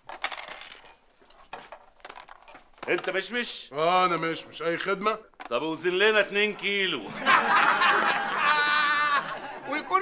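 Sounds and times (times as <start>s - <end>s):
checkers clicking on wooden board: 0.0s - 3.5s.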